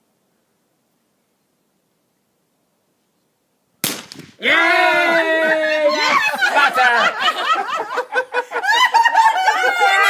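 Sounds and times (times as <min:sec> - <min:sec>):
gunshot: 0:03.8 - 0:04.4.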